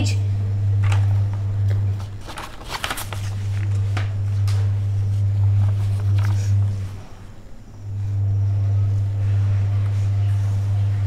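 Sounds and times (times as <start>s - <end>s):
low electrical hum: 0.0s - 11.0s
paper rustling: 1.9s - 7.0s.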